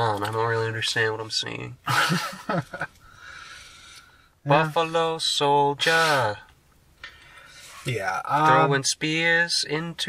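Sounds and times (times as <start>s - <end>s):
faint steady hiss: 0.0s - 10.0s
man laughing: 1.9s - 3.0s
man speaking: 4.5s - 6.5s, 7.8s - 10.0s.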